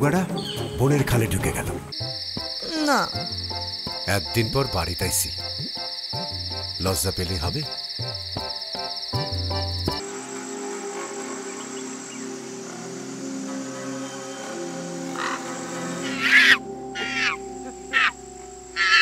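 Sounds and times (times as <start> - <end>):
high insect trill: 1.9 - 19.0
low background music drone: 9.1 - 19.0.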